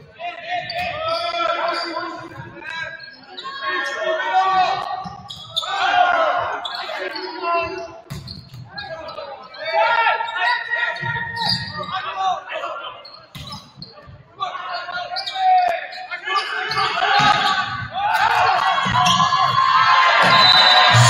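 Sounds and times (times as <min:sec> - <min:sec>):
players shouting in echoing hall: 0:00.1 - 0:08.0, 0:14.4 - 0:21.0.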